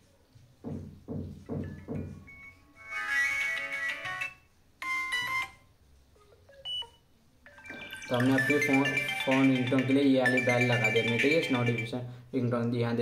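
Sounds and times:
phone ringtone melodies: 1.6s - 5.6s, 6.4s - 12.2s.

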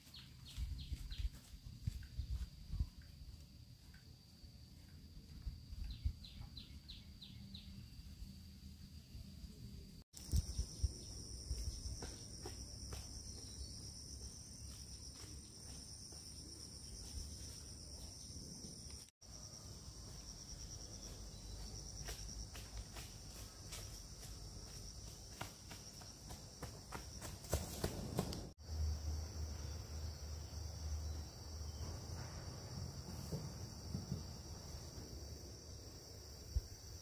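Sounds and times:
footsteps on dirt path: 0.0s - 2.8s, 11.4s - 18.3s, 20.9s - 28.6s
insects chirring: 0.1s - 37.0s.

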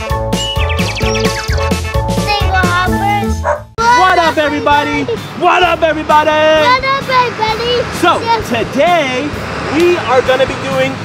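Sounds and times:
intro jingle music: 0.0s - 6.2s
cartoon dog bark: 3.4s - 4.2s.

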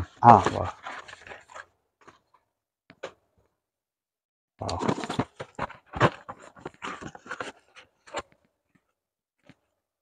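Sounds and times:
cardboard boxes and plastic rustling: 0.2s - 2.3s, 4.6s - 8.4s.

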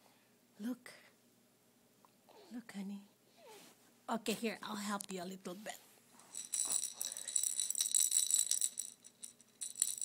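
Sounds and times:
baby rattle toy jingling: 6.2s - 10.0s.

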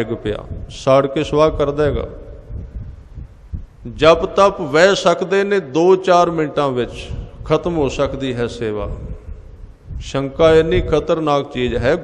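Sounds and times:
man speaking into microphone: 0.0s - 2.5s, 3.8s - 12.0s
faint hum: 0.0s - 12.0s.

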